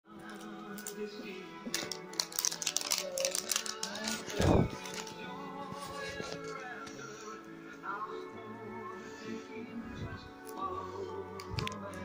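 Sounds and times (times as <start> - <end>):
background music: 0.0 - 12.0
plastic wrapping crackling: 1.7 - 7.1.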